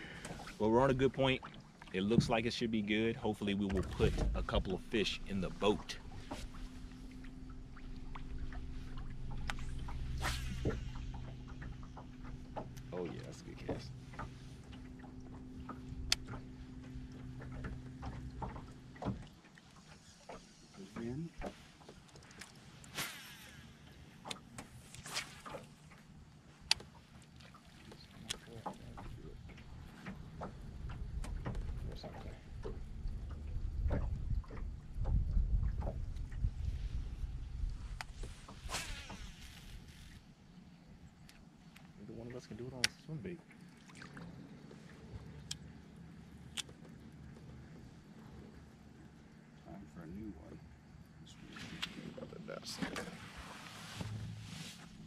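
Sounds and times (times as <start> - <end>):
boat motor hum: 0.0 - 55.0
low rumble: 28.5 - 38.5.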